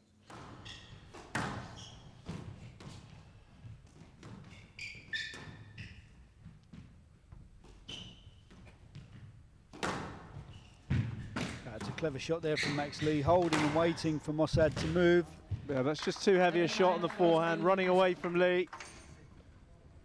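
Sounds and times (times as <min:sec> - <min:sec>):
shoes squeaking on court floor: 0:00.2 - 0:15.8
squash ball knocks: 0:08.9 - 0:12.0, 0:13.1 - 0:13.9.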